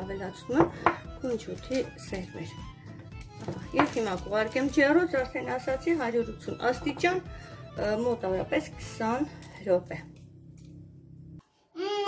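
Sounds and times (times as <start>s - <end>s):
background music: 0.0s - 11.4s.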